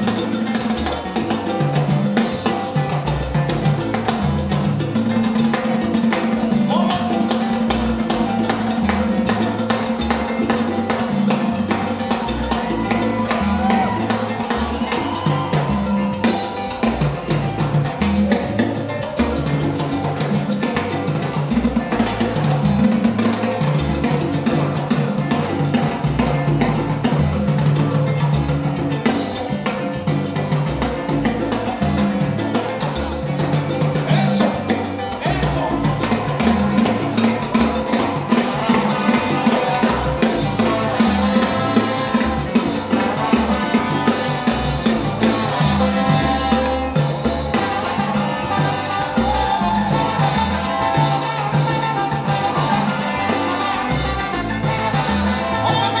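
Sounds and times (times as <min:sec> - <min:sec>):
bass line: 0:00.0 - 0:56.0
latin percussion: 0:00.0 - 0:56.0
salsa band playing: 0:00.0 - 0:56.0.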